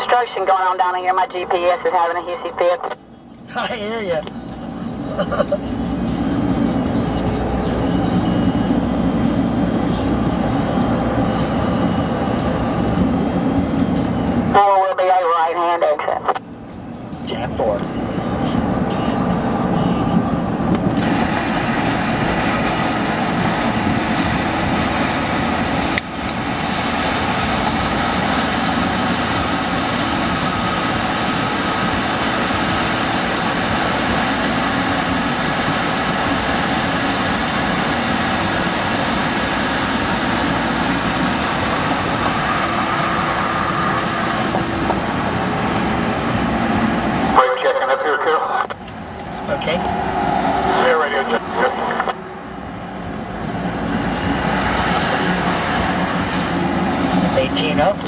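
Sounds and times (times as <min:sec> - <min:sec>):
road and engine noise in car: 0:00.0 - 0:58.0.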